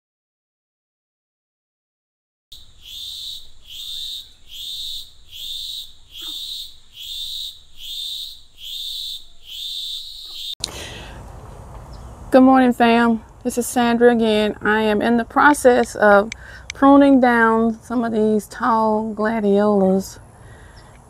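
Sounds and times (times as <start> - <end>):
faint bird chirps: 2.5 - 10.6
high-pitched chirping call: 2.5 - 10.6
outdoor background hiss: 2.5 - 21.0.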